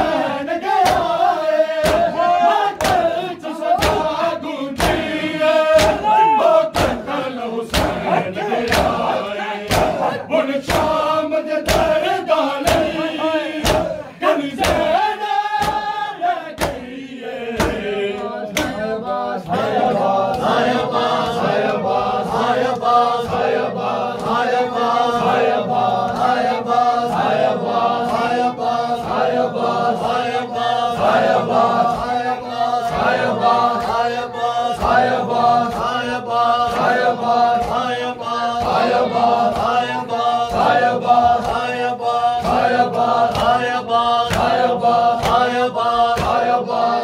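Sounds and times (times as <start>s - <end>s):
men chanting a lament: 0.0s - 47.0s
hands slapping chests: 0.7s - 1.2s, 1.8s - 7.1s, 7.7s - 16.0s, 16.6s - 16.9s, 17.6s - 21.7s, 31.0s - 46.6s.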